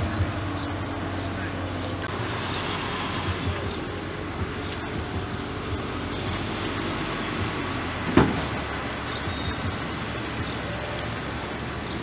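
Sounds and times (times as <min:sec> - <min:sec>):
distant engines droning: 0:00.0 - 0:12.0.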